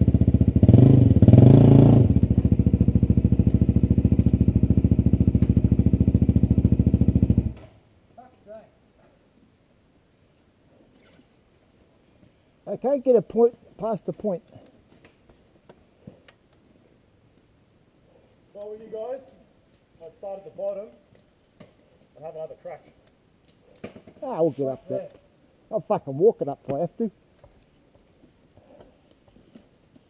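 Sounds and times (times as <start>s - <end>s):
faint background hiss: 2.0s - 30.0s
faint ticks and rustles: 13.2s - 24.2s, 27.2s - 30.0s.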